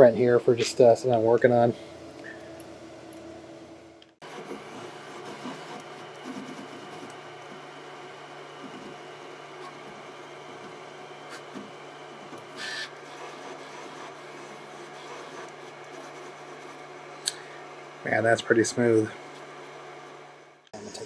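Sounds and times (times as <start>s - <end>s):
printer stepper motors whining: 4.2s - 21.0s.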